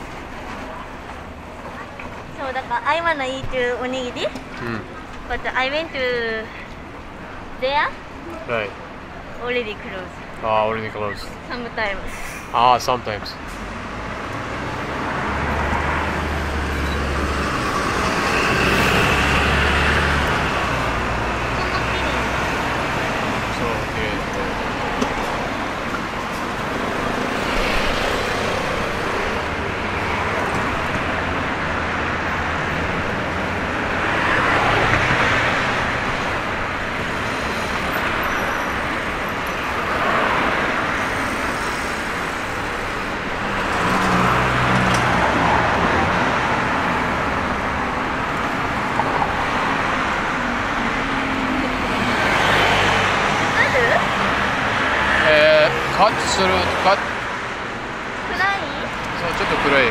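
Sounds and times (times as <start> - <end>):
hum of road traffic: 0.0 - 59.9
vehicles passing close by: 0.0 - 59.9.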